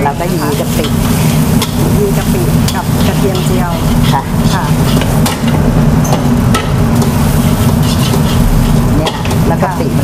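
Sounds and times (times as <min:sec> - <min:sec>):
light sizzle: 0:00.0 - 0:10.0
steady low hum: 0:00.0 - 0:10.0
metal spatula scraping a wok: 0:00.2 - 0:09.8.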